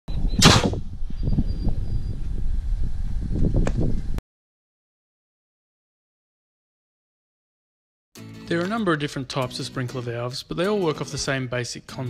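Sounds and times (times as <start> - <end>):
wind buffeting microphone: 0.1 - 4.2
air cannon whoosh: 0.4 - 1.1.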